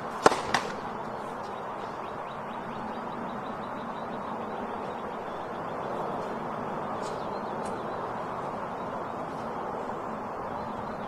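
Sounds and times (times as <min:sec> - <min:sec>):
tennis ball struck hard: 0:00.2 - 0:00.8.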